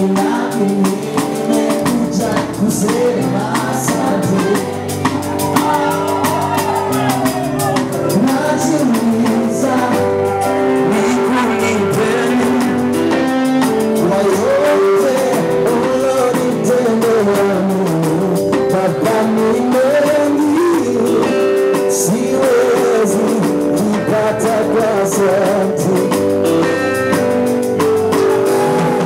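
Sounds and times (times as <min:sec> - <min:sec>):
electric guitar: 0:00.0 - 0:29.0
live band music: 0:00.0 - 0:29.0
man singing into microphone: 0:00.0 - 0:29.0.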